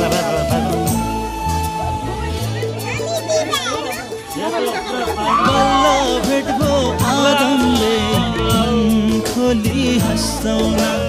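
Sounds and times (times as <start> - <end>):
children calling and chattering: 0.0 - 11.0
music track: 0.0 - 11.0.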